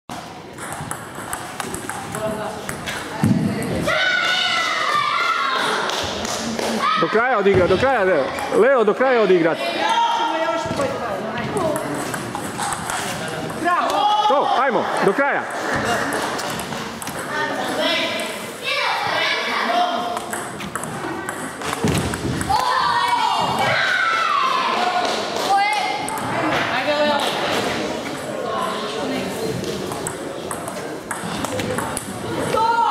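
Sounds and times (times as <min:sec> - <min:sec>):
table tennis ball clicking: 0:00.6 - 0:03.7, 0:11.7 - 0:14.0, 0:16.3 - 0:18.4, 0:20.1 - 0:22.7, 0:29.6 - 0:32.2
voices calling out in a hall: 0:02.1 - 0:32.9
table tennis ball clicks: 0:16.4 - 0:17.3, 0:20.1 - 0:22.7.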